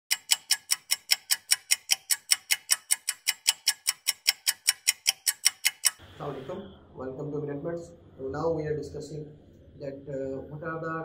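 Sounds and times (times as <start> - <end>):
fast sharp ticking: 0.1 - 6.0.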